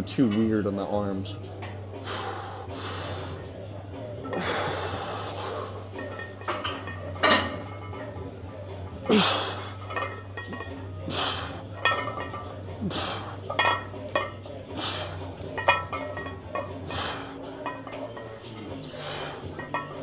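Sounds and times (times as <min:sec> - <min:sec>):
barbell plates clinking: 0:05.9 - 0:08.3, 0:09.7 - 0:10.9, 0:11.7 - 0:12.6, 0:13.4 - 0:14.4, 0:15.4 - 0:20.0.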